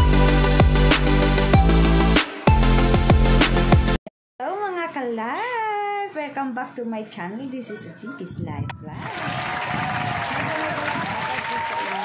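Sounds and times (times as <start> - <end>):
crowd clapping and cheering: 9.0 - 12.0.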